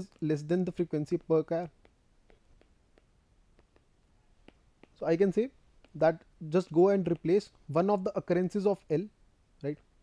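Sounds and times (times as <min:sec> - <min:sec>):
stylus tapping on glass screen: 0:00.0 - 0:07.7.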